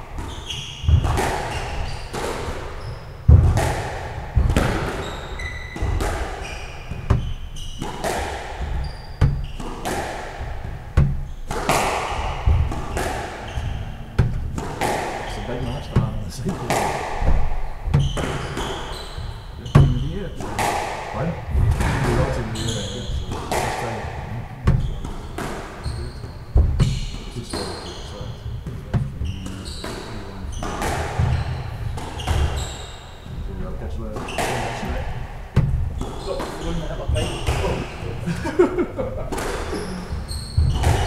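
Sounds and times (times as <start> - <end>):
squash ball knocking off walls: 0.0 - 27.8, 28.4 - 33.5, 34.1 - 38.2, 39.3 - 41.0
shoes squeaking on wooden floor: 0.0 - 38.4, 39.0 - 41.0
footsteps on wooden court: 0.2 - 20.8, 21.5 - 33.6, 34.2 - 38.3.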